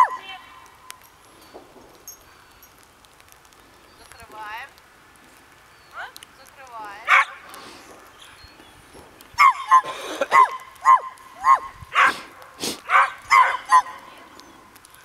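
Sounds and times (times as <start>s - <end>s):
dog barking: 0.0s - 0.2s, 7.1s - 7.4s, 9.4s - 14.1s.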